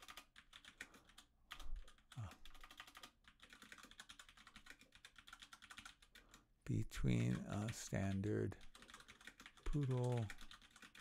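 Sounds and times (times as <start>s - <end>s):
typing on computer keyboard: 0.0s - 11.0s.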